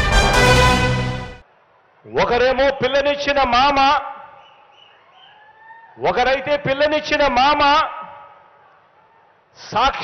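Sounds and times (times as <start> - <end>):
faint background noise: 1.4 - 10.0.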